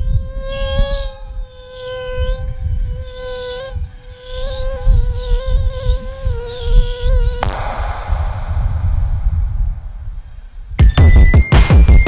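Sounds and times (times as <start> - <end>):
low rumble: 7.4 - 10.8.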